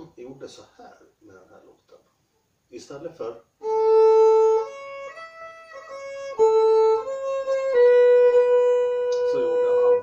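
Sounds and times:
solo fiddle playing: 0:03.6 - 0:10.0.

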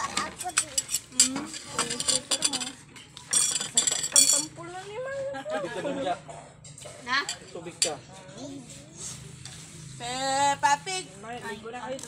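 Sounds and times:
spoons and dishes clinking: 0:00.0 - 0:04.6.

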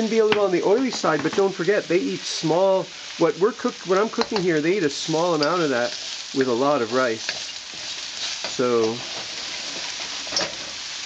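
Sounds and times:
vegetables sizzling in hot oil: 0:00.0 - 0:11.0.

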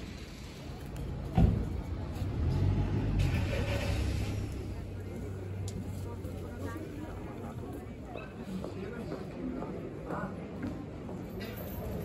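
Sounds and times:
motor vehicle passing: 0:01.8 - 0:05.4.

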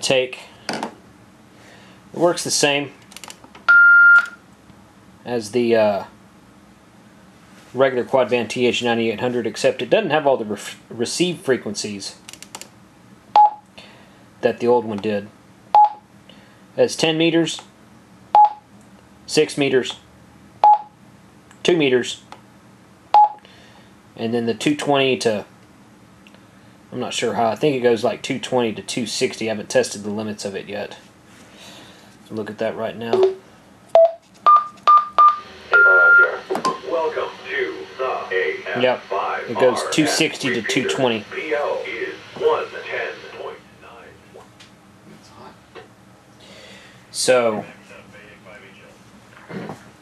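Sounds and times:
radio key beep: 0:03.7 - 0:04.4, 0:34.0 - 0:37.3
low voice: 0:35.9 - 0:44.4
radio click: 0:39.6 - 0:43.4.

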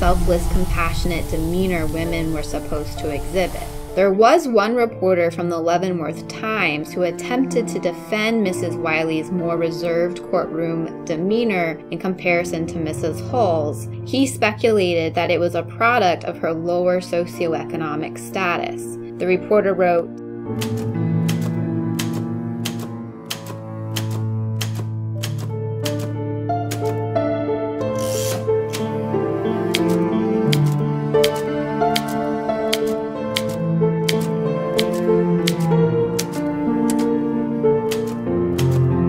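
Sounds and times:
slow sustained chords: 0:00.0 - 0:04.2, 0:28.7 - 0:39.0
background music: 0:00.0 - 0:39.0
crisp click-like beat: 0:20.6 - 0:26.1, 0:29.7 - 0:37.2
typewriter keys clacking: 0:20.6 - 0:26.1, 0:26.7 - 0:27.0, 0:29.7 - 0:37.2, 0:37.9 - 0:38.9.

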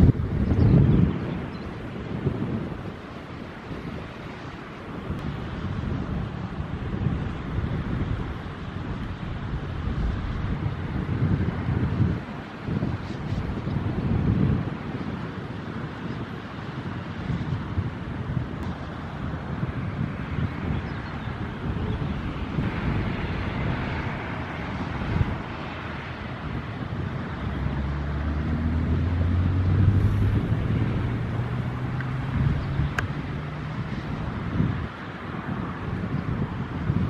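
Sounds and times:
wind buffeting microphone: 0:00.0 - 0:37.0
low steady drone: 0:18.5 - 0:34.4.

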